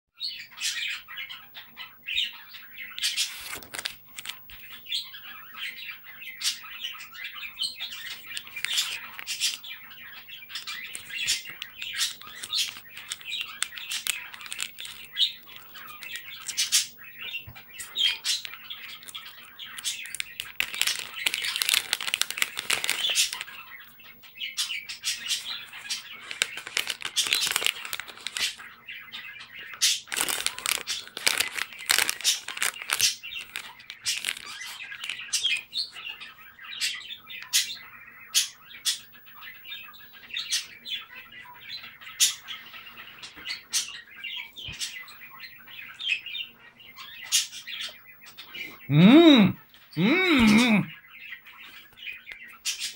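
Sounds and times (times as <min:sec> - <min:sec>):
foil snack packet crinkling: 0:03.1 - 0:04.6, 0:08.0 - 0:09.7, 0:10.6 - 0:16.8, 0:18.3 - 0:23.5, 0:25.4 - 0:28.7, 0:29.8 - 0:35.6.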